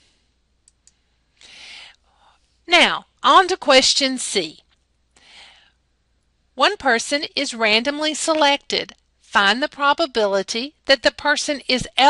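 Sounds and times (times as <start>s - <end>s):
faint clicks: 0.6s - 1.0s
short breath drawn in: 1.4s - 2.5s, 5.2s - 5.8s.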